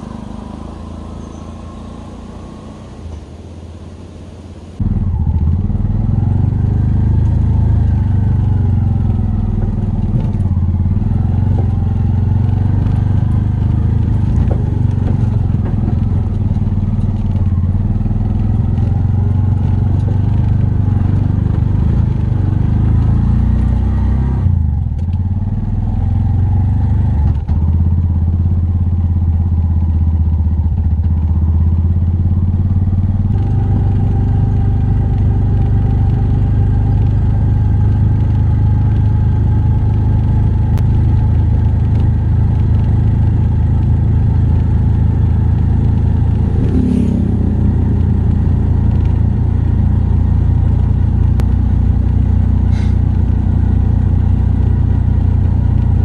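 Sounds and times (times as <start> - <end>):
road noise: 0.0 - 56.0
small engine running: 52.6 - 53.1.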